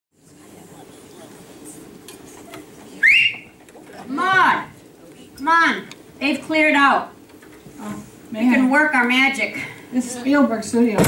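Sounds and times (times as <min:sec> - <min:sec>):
murmur of room noise: 0:00.1 - 0:11.0
short rising whistle: 0:03.0 - 0:03.5.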